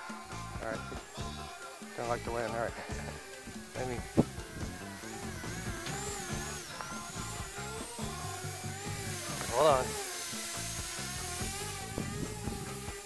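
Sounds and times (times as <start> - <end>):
background music: 0.0 - 13.0
high whine of electric motors: 0.0 - 13.0.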